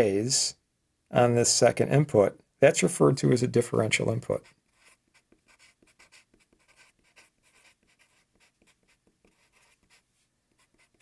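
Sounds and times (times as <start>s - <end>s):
marker scratching on paper: 4.3s - 11.0s.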